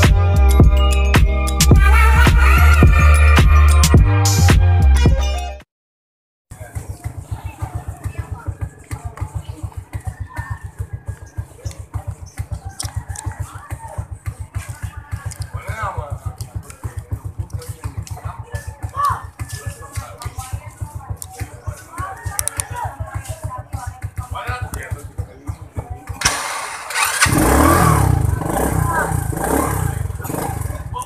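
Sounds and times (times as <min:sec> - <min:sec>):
motorcycle engine idling: 0:06.5 - 0:31.0.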